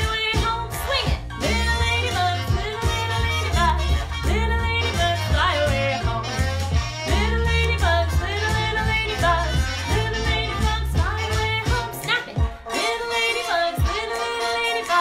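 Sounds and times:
woman singing children's song: 0:00.0 - 0:06.3, 0:07.1 - 0:15.0
instrumental accompaniment: 0:00.0 - 0:15.0.

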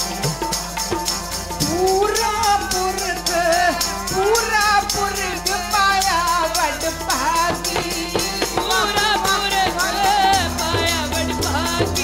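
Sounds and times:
jingling hand percussion: 0:00.0 - 0:12.0
tabla strokes: 0:00.0 - 0:12.0
man singing: 0:01.6 - 0:12.0
woman singing: 0:01.6 - 0:12.0.

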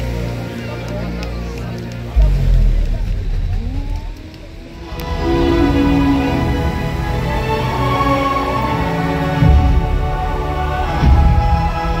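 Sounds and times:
soundtrack over loudspeakers: 0:00.0 - 0:12.0
rising sliding tones: 0:02.2 - 0:08.8.

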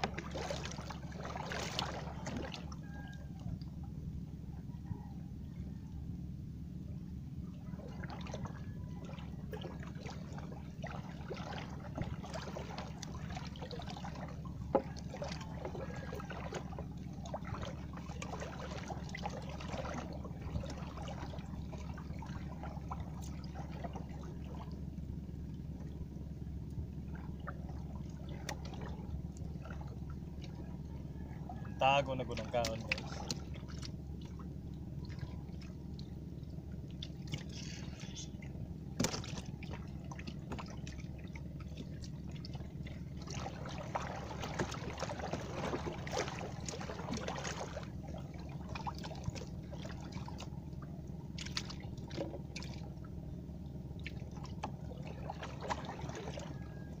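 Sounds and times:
water trickling and splashing: 0:00.0 - 0:03.9, 0:07.5 - 0:57.0
steady low hum: 0:00.0 - 0:57.0.

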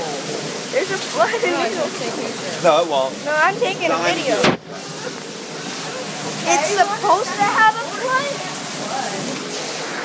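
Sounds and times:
running water rushing: 0:00.0 - 0:10.0.

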